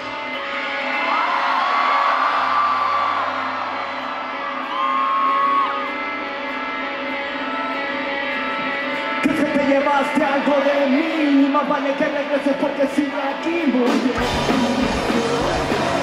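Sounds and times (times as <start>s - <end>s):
person whooping: 4.6s - 5.9s.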